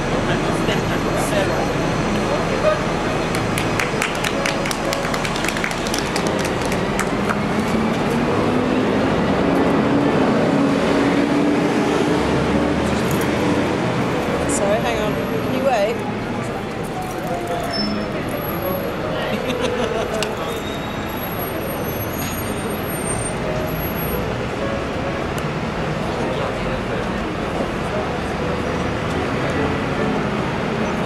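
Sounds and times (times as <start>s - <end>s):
traffic running: 0.0s - 31.0s
people talking indistinctly: 14.2s - 24.1s.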